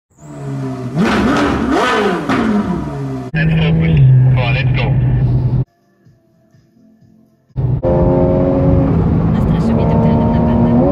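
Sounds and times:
car engine revving: 0.1 - 5.6, 7.6 - 10.9.

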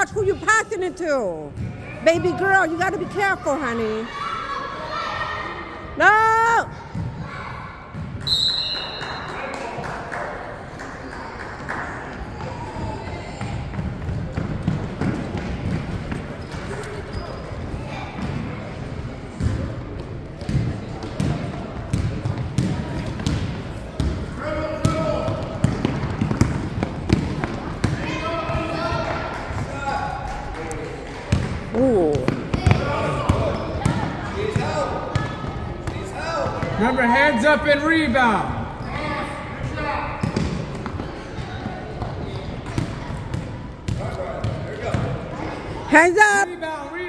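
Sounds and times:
voices of players and spectators: 0.0 - 47.0.

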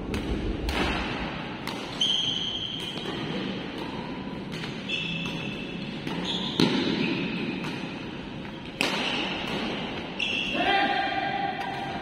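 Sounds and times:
racket striking shuttlecock: 0.0 - 10.2
shoes squeaking on court floor: 1.9 - 10.6.

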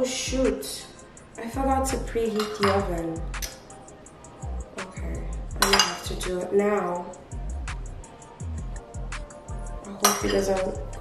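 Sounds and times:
background music with steady beat: 0.0 - 11.0
utensil clinking against baking dish: 2.3 - 2.9, 5.6 - 6.2, 10.0 - 10.5.

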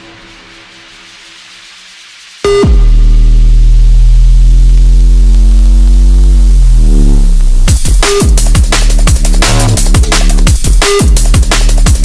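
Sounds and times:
sustained synth bass note: 2.5 - 7.8.

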